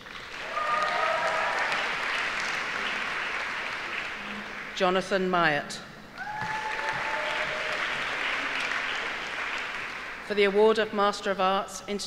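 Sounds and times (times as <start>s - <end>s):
audience applauding: 0.0s - 5.1s, 6.2s - 10.6s.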